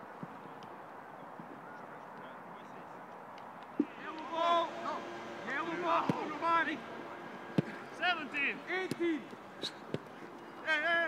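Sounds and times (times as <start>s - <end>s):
people calling and shouting: 3.4s - 11.0s.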